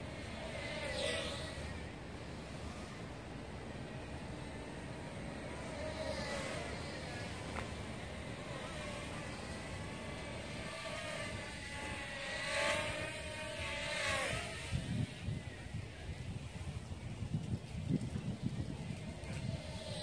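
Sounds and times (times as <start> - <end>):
drone propellers whining: 0.0 - 16.9.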